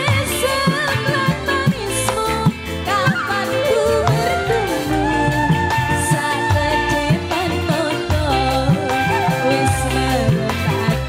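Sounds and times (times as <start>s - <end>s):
live band playing: 0.0s - 11.0s
woman singing into a microphone: 0.0s - 11.0s
drum strokes bending in pitch: 0.7s - 11.0s.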